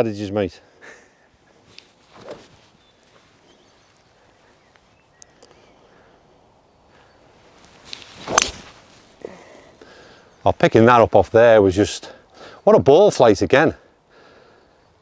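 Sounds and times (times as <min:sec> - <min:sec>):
quiet outdoor background: 0:00.0 - 0:15.0
golf club striking ball: 0:08.2 - 0:08.7.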